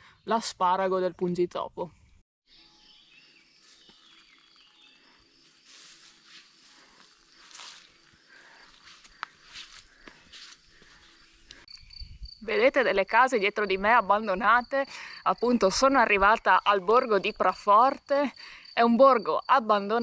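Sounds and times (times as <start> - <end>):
high insect trill: 2.5 - 20.0
soft rustling: 5.4 - 11.7.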